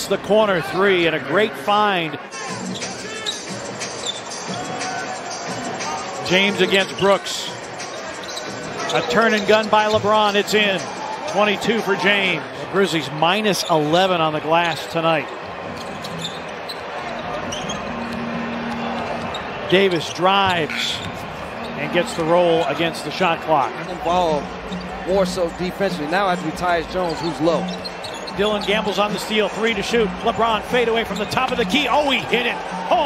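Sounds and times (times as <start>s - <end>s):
arena music: 0.0s - 33.0s.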